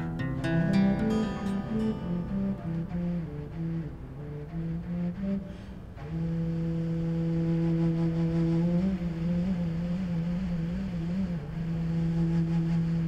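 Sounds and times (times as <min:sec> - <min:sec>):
low sustained music note: 0:00.0 - 0:13.0.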